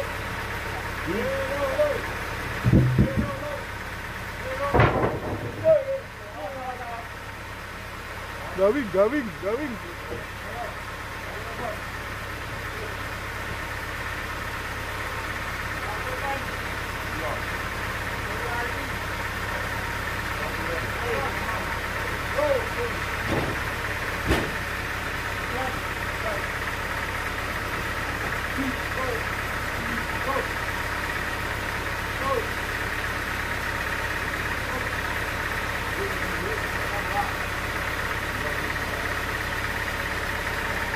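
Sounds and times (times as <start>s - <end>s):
band sawmill drive running: 0.0s - 40.9s
sharp knocks: 2.6s - 3.4s, 4.7s - 5.8s, 23.2s - 24.6s.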